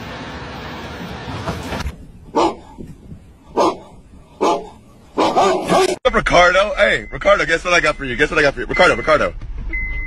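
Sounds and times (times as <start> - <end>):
dog barking: 2.3 - 2.7, 3.5 - 6.0.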